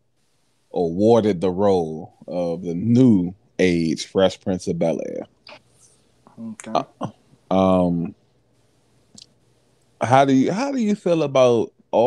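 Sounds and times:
person speaking: 0.8 - 5.6, 6.3 - 8.1, 10.0 - 12.0.

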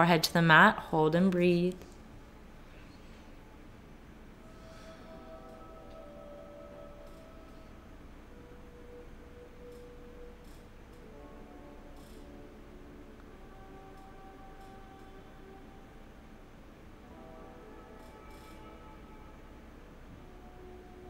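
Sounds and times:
soft music of held tones: 0.0 - 21.0.

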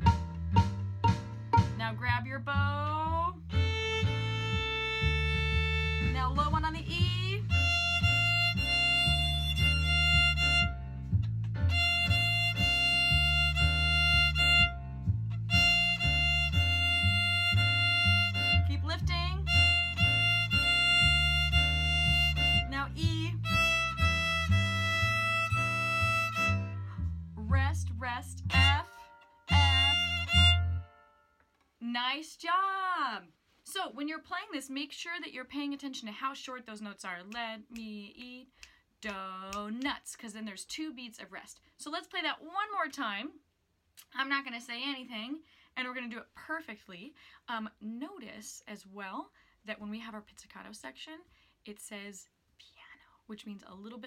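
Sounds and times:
backing track with bass line: 0.0 - 31.0
violin playing held notes: 7.4 - 10.8, 11.7 - 27.0, 28.4 - 31.1.

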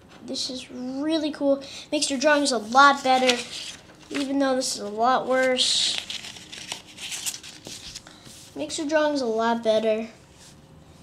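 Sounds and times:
paper rustling: 2.2 - 8.1.

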